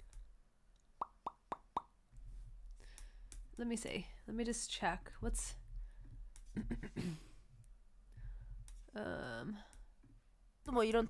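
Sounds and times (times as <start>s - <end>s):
mouth pops: 1.0s - 1.9s.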